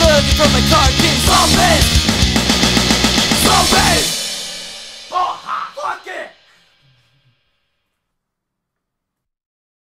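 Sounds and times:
punk rock music ringing out: 0:00.0 - 0:06.8
person calling out: 0:05.1 - 0:06.4.

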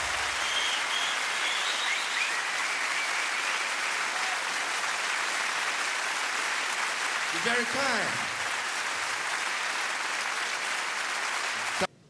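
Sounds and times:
audience applauding: 0:00.0 - 0:11.9.

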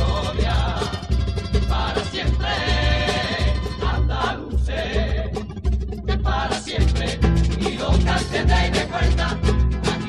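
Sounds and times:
guitars and percussion playing: 0:00.0 - 0:10.0.

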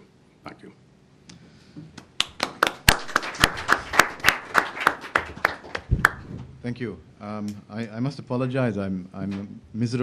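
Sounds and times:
audience applauding: 0:02.2 - 0:06.2.

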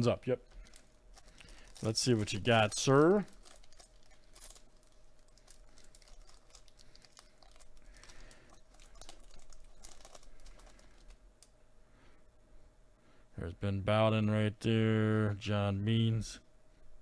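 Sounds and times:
foil wrapper crinkling and tearing: 0:00.0 - 0:11.2
steady low hum: 0:00.0 - 0:17.0.

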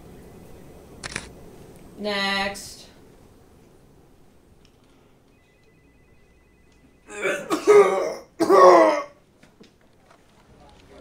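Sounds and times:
man clearing throat coughing: 0:07.1 - 0:09.2.

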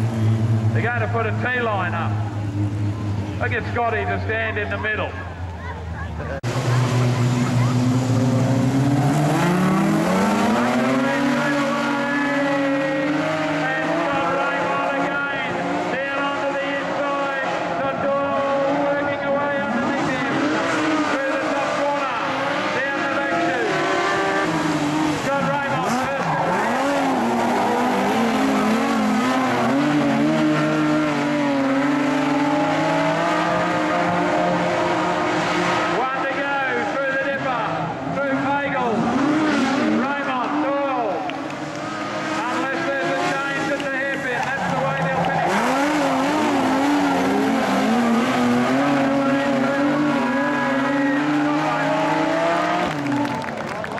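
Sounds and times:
race car engines accelerating: 0:00.0 - 0:53.9.

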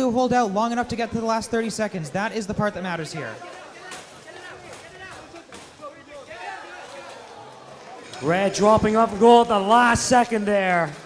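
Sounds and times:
commentary speech: 0:00.0 - 0:11.0.

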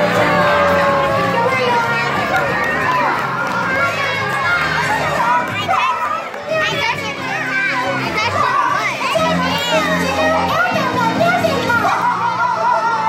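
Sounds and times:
children shouting and squealing: 0:00.0 - 0:13.0.

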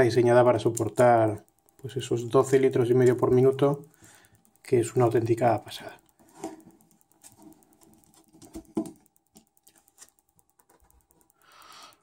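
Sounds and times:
screwdriver ticks and clicks: 0:00.0 - 0:12.0.

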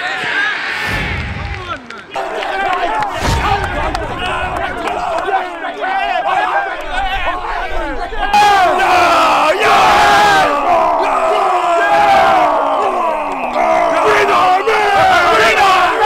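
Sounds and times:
men shouting war cry: 0:02.1 - 0:16.0.

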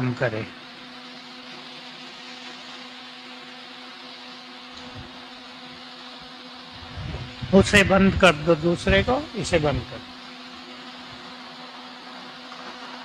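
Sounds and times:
electric fans whirring: 0:00.0 - 0:13.0.

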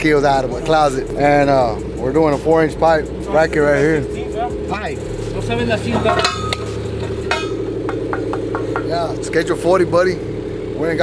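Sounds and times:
engine hum: 0:00.0 - 0:11.0
metal pipe clinks and taps: 0:05.9 - 0:08.9.

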